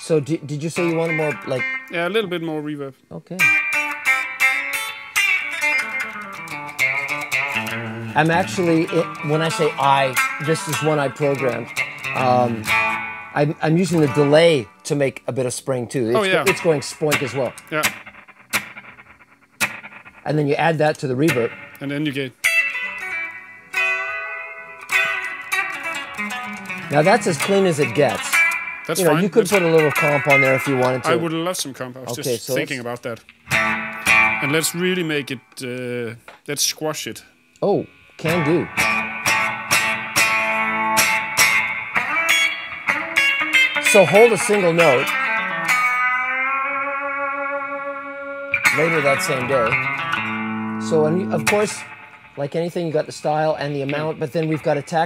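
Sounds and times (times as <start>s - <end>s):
sustained electric guitar note: 6.0s - 13.3s, 22.8s - 31.4s, 47.7s - 54.8s.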